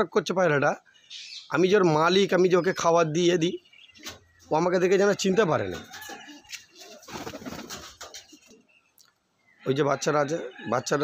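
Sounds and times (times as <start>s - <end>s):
pigeons cooing: 5.7s - 8.6s.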